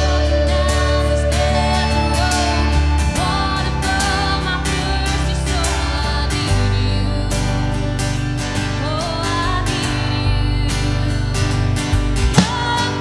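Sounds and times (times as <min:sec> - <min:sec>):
acoustic and electric guitars: 0:00.0 - 0:13.0
electric bass: 0:00.0 - 0:13.0
woman singing: 0:00.0 - 0:13.0
drum kit with cymbals: 0:11.9 - 0:13.0.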